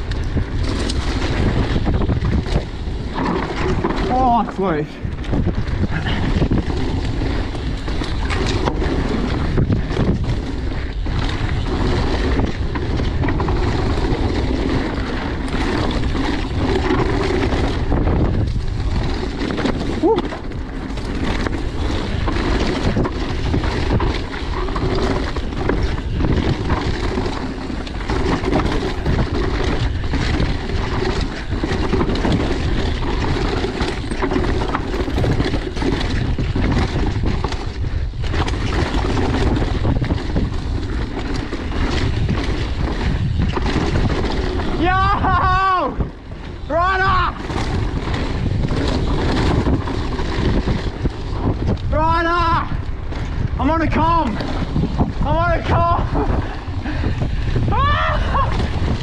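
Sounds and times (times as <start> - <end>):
bike knocking and rattling: 0.0 - 59.0
tyres rumbling on dirt: 0.0 - 59.0
wind rushing on microphone: 0.0 - 59.0.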